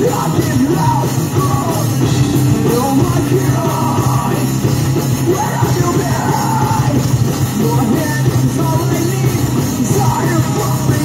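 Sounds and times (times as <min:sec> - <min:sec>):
person singing: 0:00.0 - 0:02.0, 0:02.6 - 0:04.5, 0:05.2 - 0:11.0
live rock band playing: 0:00.0 - 0:11.0.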